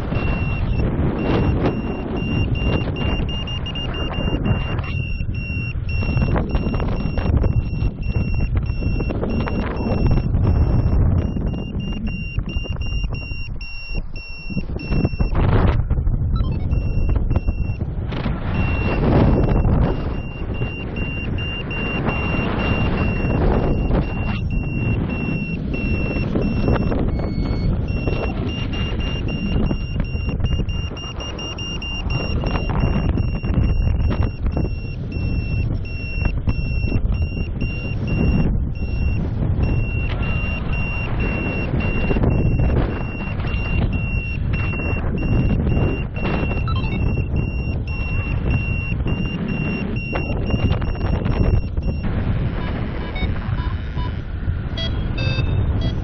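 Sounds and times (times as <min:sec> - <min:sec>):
variometer beeping: 0:00.0 - 0:56.0
wind rushing over microphone: 0:00.0 - 0:56.0.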